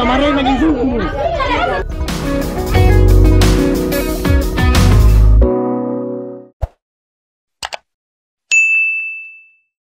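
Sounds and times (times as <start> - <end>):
double mouse click: 7.6 - 7.9
bright bell ding: 8.5 - 9.7.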